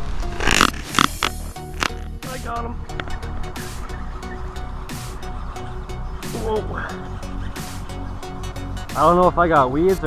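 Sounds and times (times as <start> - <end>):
sharp click: 0.4 - 2.0
electronic dance music: 1.0 - 10.0.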